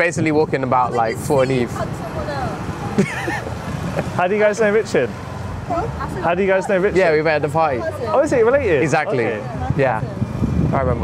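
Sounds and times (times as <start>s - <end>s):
car traffic: 0.0s - 11.0s.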